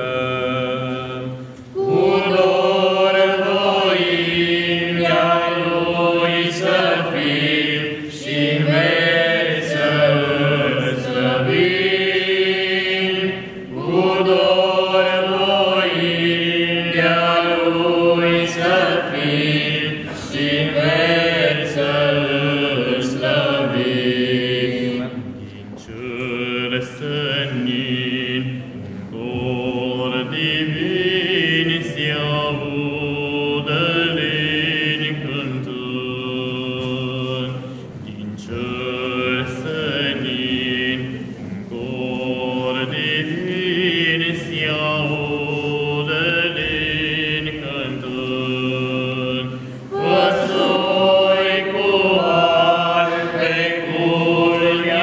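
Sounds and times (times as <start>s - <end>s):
men singing a carol unaccompanied: 0.0s - 55.0s.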